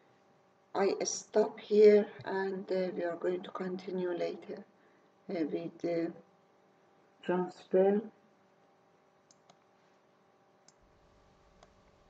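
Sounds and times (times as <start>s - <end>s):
faint low hum: 0.0s - 12.0s
computer mouse clicks: 9.2s - 9.7s, 10.6s - 10.8s, 11.6s - 11.8s.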